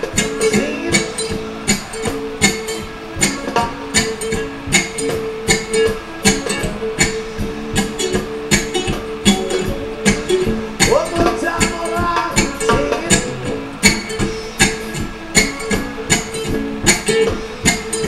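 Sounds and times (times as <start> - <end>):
electric ukulele strummed: 0.0 - 18.0.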